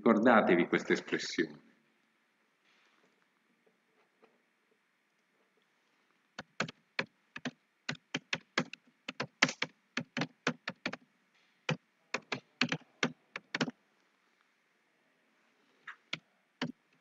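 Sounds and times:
typing on computer keyboard: 6.4s - 11.0s, 11.7s - 13.7s.

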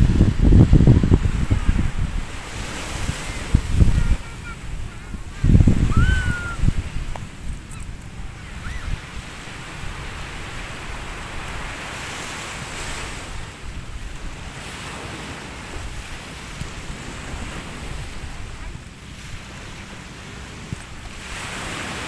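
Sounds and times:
small waves washing on shore: 0.0s - 22.0s
wind rumbling on microphone: 0.0s - 22.0s.

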